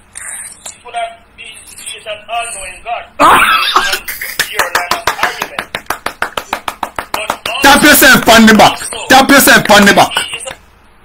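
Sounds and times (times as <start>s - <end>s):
man laughing: 3.2s - 5.8s
fast hand claps: 4.2s - 10.6s.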